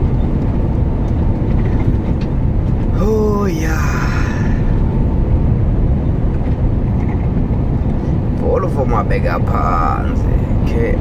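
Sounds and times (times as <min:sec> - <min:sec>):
truck engine and road rumble: 0:00.0 - 0:11.0.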